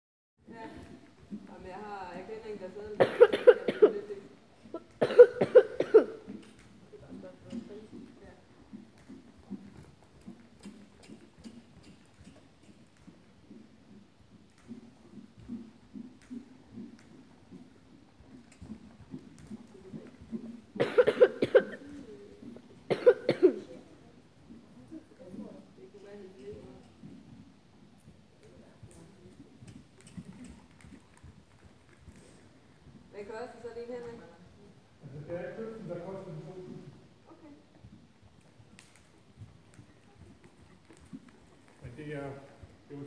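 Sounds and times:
person coughing: 3.0s - 4.1s, 4.8s - 6.2s, 20.8s - 21.9s, 22.9s - 23.7s.

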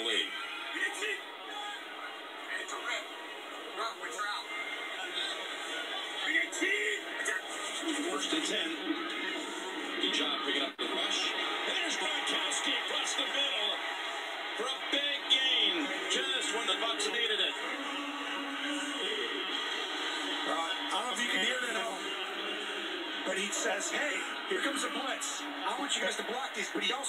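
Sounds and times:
music from tv speaker: 0.0s - 27.0s.

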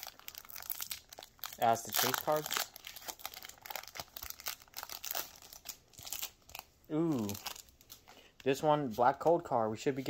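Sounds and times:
foil wrapper crinkling: 0.0s - 8.2s.

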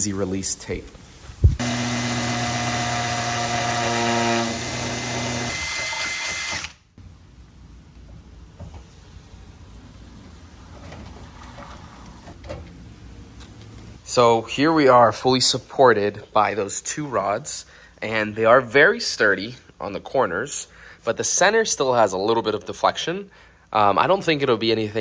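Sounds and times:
power drill motor running: 1.6s - 6.8s.

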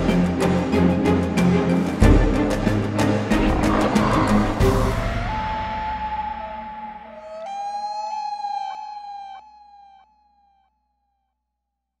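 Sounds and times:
steady siren-like note: 3.4s - 10.5s.

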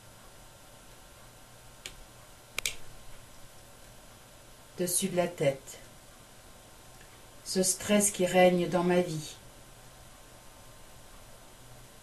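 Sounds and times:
soft clicks: 1.8s - 4.0s.

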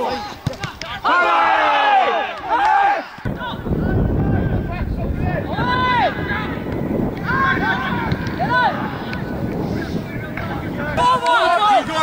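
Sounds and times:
wind buffeting microphone: 3.2s - 12.0s.

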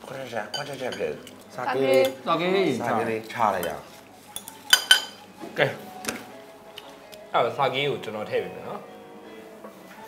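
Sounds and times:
tableware clinking: 0.5s - 2.2s, 3.6s - 5.3s.

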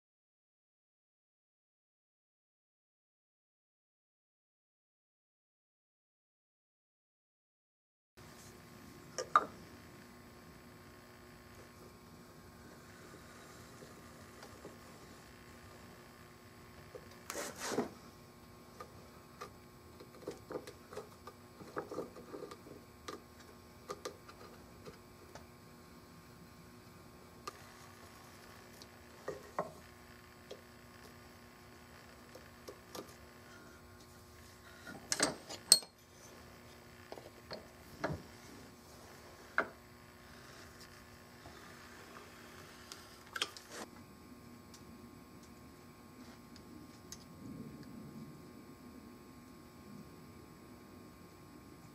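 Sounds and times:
faint steady hum: 8.2s - 51.9s
tools clicking and knocking: 35.1s - 36.0s.

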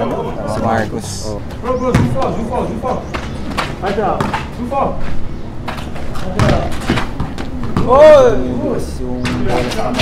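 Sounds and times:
basketball thudding on court: 6.3s - 8.1s.

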